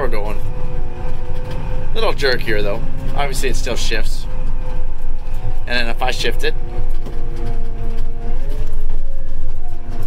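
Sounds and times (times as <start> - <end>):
engine rumbling under load: 0.0 - 10.0.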